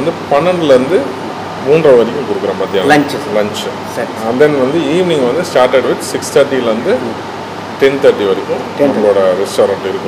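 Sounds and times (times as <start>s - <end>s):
person talking: 1.7s - 7.2s.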